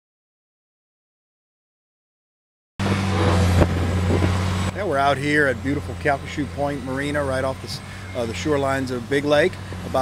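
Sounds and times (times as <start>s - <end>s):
rushing noise: 2.8s - 6.6s
steady engine hum: 2.8s - 10.0s.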